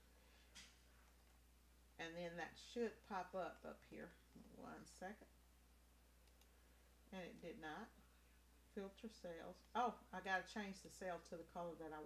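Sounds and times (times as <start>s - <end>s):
steady low hum: 0.0s - 12.0s
computer mouse clicks: 6.2s - 6.5s.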